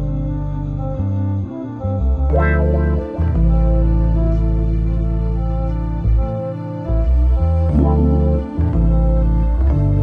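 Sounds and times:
deep bass notes: 0.0s - 10.0s
bright musical flourish: 2.3s - 4.6s, 7.6s - 9.2s.

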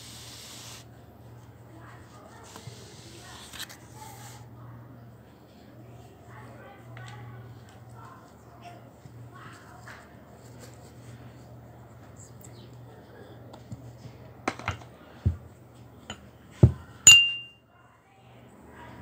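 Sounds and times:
knife clinking on porcelain cup: 17.1s - 17.6s.

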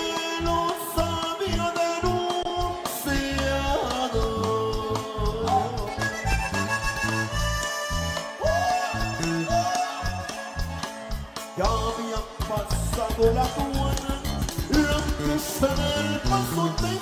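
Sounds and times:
accordion melody: 0.0s - 17.0s
pulsing bass line: 0.4s - 17.0s.

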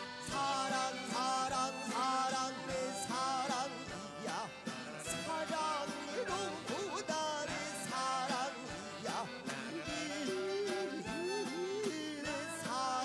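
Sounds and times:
band accompaniment: 0.0s - 13.0s
wavering melody with vibrato: 0.0s - 13.0s.

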